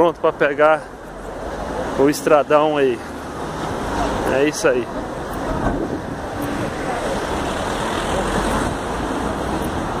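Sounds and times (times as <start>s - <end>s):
traffic rushing: 0.0s - 10.0s
wind rumble on microphone: 4.9s - 10.0s.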